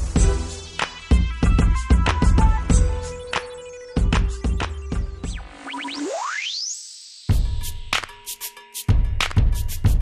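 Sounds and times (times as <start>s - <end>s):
background music with a beat: 0.0s - 6.3s, 7.2s - 10.0s
rising sweep to high tone: 5.1s - 7.4s
quick rising chirps: 5.3s - 7.3s.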